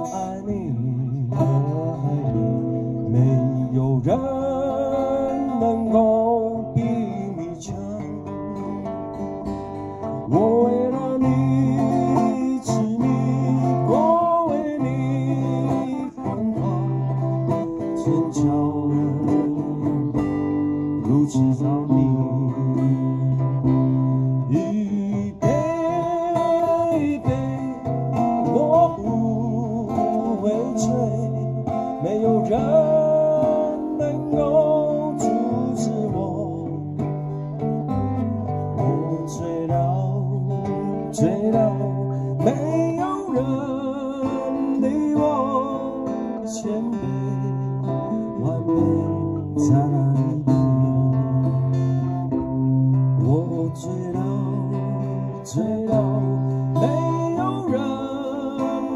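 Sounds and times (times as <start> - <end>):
acoustic guitars strummed: 0.0 - 58.9
man singing: 0.0 - 58.9.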